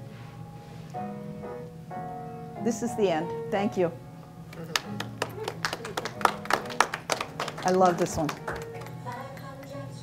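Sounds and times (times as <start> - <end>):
music over room speakers: 0.0 - 2.6, 4.0 - 10.0.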